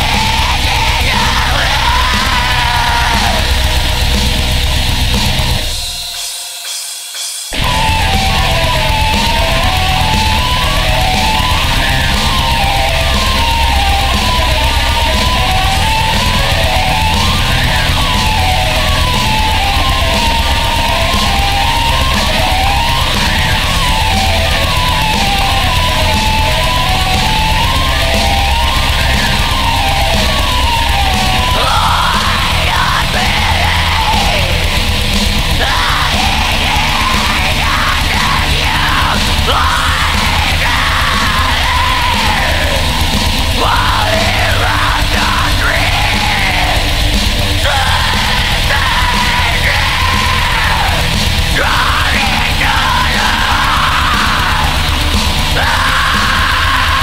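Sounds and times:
black metal band playing: 0.0s - 57.0s
harsh screamed vocal: 0.0s - 57.0s.

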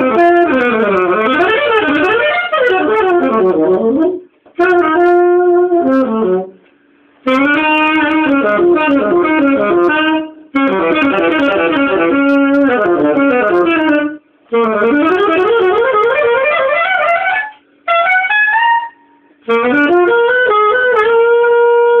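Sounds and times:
saxophone playing jazz runs: 0.0s - 22.0s.

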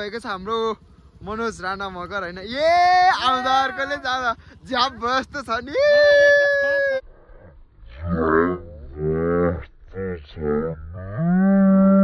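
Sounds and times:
low moo-like calls: 7.0s - 12.0s.

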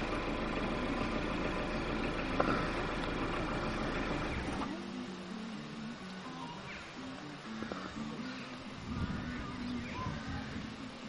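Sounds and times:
low outdoor rumble: 0.0s - 11.0s
quiet music: 0.8s - 11.0s.

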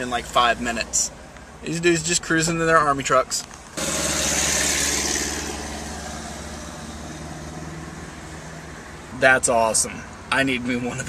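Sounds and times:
jeep engine driving past: 3.8s - 9.0s.

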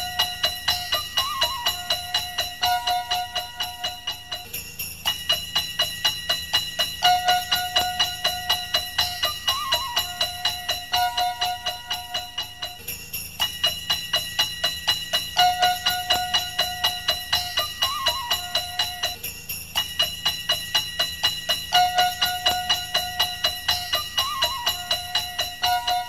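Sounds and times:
instrumental christmas music: 0.0s - 26.0s
sleigh bells jingling: 0.0s - 26.0s.

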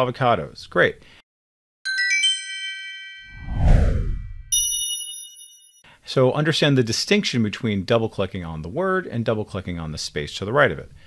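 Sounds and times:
bright bell-like chime: 1.9s - 5.9s
whoosh falling in pitch: 3.2s - 4.5s
low rumble: 3.4s - 4.5s.

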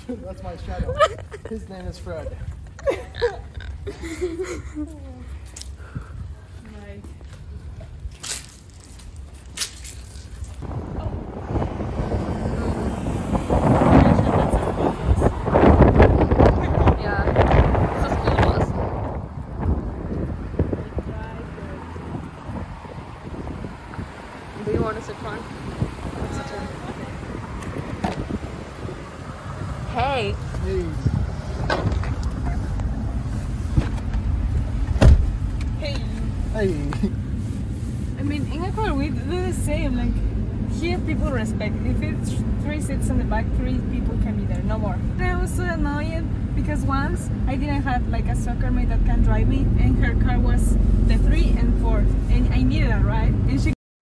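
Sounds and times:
road traffic rumble: 0.0s - 53.8s
wind on microphone: 10.4s - 36.6s
car door shutting thump: 34.9s - 35.4s.

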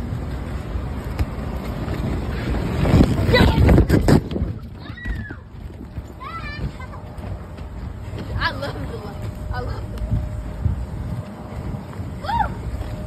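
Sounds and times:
wind on microphone: 0.0s - 13.0s.

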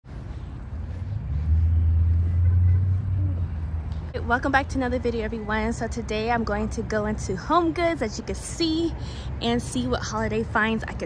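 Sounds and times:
car low rumble: 0.0s - 7.8s.

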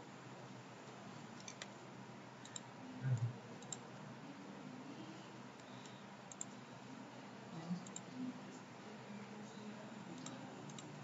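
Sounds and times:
computer mouse clicks: 1.4s - 1.7s, 2.4s - 3.8s, 5.6s - 6.6s, 7.8s - 8.1s, 10.2s - 11.0s.

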